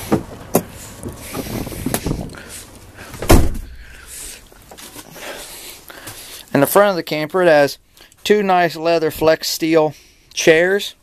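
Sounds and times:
loud deep thump: 3.1 - 3.9.

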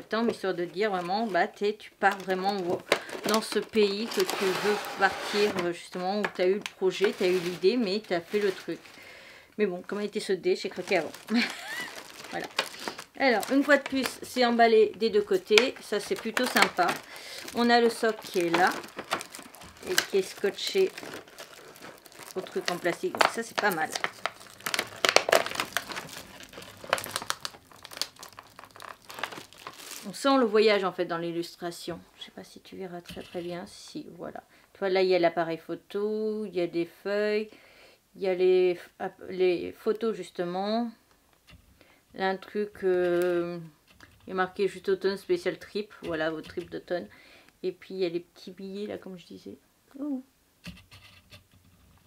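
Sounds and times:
plastic packaging crinkling: 0.1 - 9.1, 9.8 - 30.8
fingers rubbing plastic: 2.2 - 5.6.

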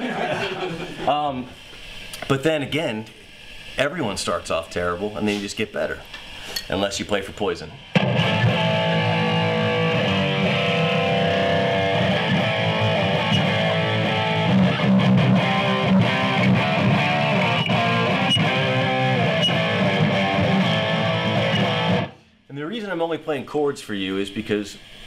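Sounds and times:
distorted electric guitar chords: 7.8 - 22.3.

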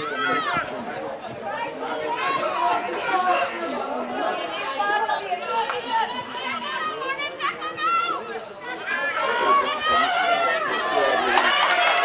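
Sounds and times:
crowd shouting and chatter: 0.0 - 12.0.

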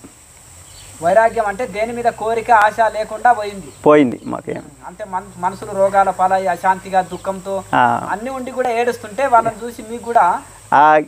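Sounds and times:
crickets trilling: 0.0 - 11.0
man talking: 1.0 - 11.0.

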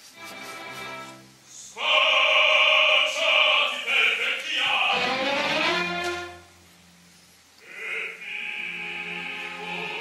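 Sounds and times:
choir voices: 1.5 - 6.4, 7.6 - 10.0
orchestra playing: 4.8 - 6.6, 8.4 - 10.0.

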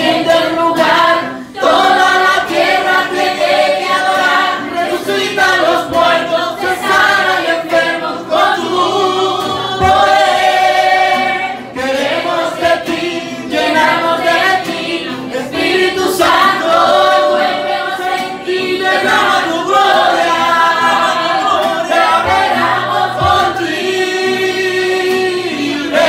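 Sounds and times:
classical guitar: 0.0 - 26.0
congregation singing: 0.0 - 26.0.

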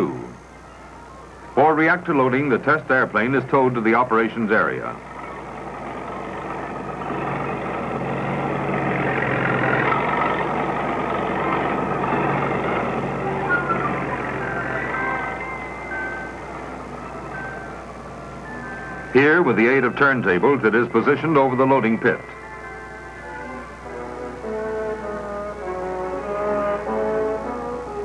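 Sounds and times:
tow tractor engine droning: 0.0 - 28.0.

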